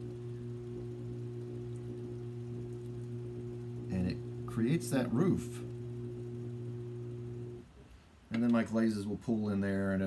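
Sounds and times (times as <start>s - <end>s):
potter's wheel motor humming: 0.0s - 7.7s.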